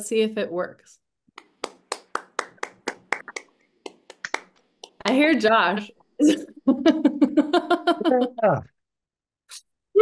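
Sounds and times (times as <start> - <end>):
hand claps: 1.4 - 5.4.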